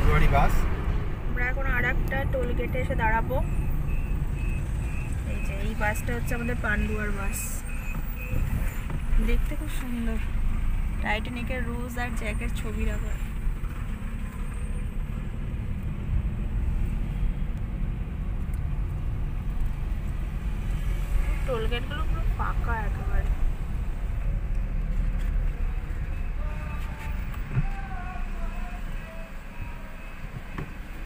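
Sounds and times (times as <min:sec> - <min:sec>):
car engine and tyres rumbling: 0:00.0 - 0:31.0.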